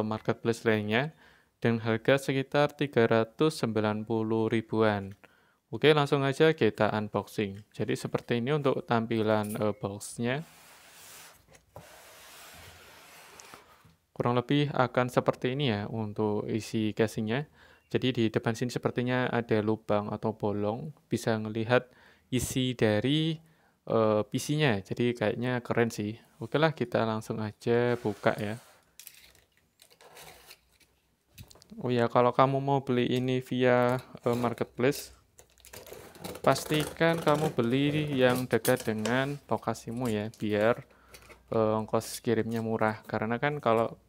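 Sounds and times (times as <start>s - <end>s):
hands scraping cardboard box: 10.4s - 13.8s, 27.8s - 28.8s, 35.8s - 38.1s.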